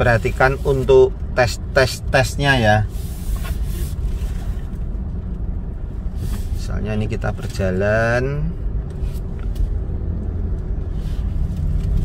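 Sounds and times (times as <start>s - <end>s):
car engine idling in cabin: 0.0s - 12.0s.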